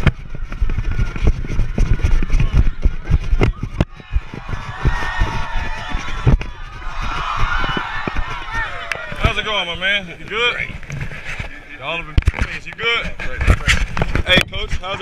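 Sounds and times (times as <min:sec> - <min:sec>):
faint voices: 0:00.0 - 0:15.0
microphone rumble and thumps: 0:00.0 - 0:15.0.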